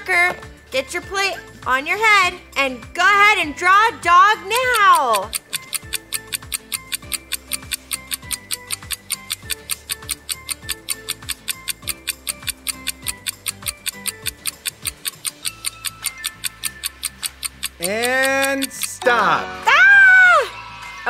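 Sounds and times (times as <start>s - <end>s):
clock-like ticking: 4.0s - 19.1s
repeating bass line: 4.4s - 19.0s.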